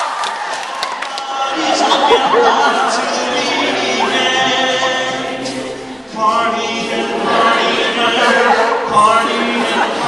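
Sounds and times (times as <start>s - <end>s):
vocal group singing harmony: 1.2s - 10.0s.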